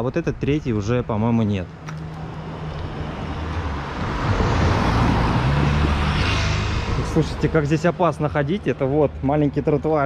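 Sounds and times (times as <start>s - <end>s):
motor scooter passing: 2.0s - 7.4s.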